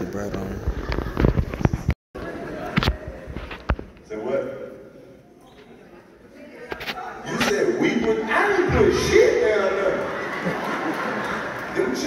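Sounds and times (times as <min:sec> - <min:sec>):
man's voice over speakers: 0:07.2 - 0:10.1
audience laughing: 0:09.4 - 0:12.0.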